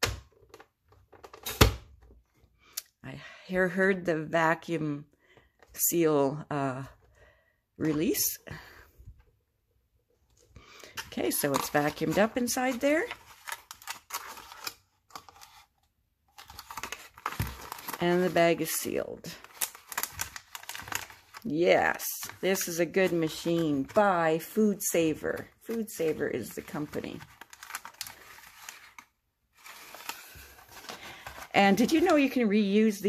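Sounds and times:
plastic bag crinkling: 10.8s - 15.6s, 16.3s - 24.0s, 25.6s - 32.8s.

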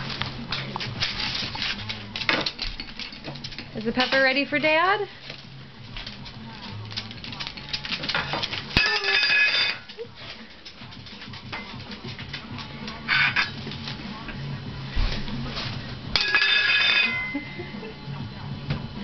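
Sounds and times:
metal toy cookware clanging: 7.5s - 9.9s, 16.2s - 17.7s.

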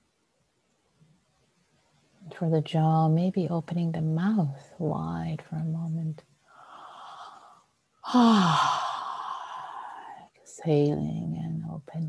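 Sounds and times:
woman sighing: 8.0s - 10.2s.

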